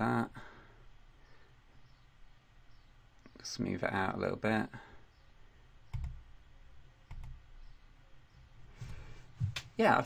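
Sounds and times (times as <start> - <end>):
computer mouse clicks: 5.9 - 6.2, 7.0 - 7.4.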